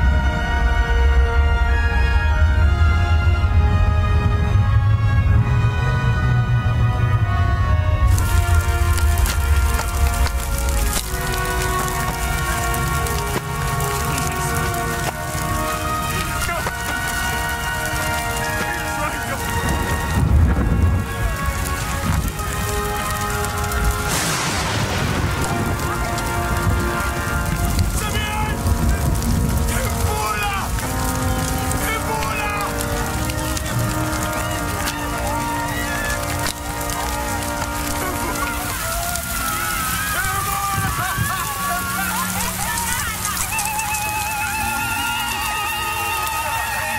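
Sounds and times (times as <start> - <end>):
background music: 0.0 - 46.9
rain falling: 0.0 - 46.9
thunder rumble: 0.0 - 46.9
people shouting excitedly: 8.1 - 20.2, 25.4 - 46.9.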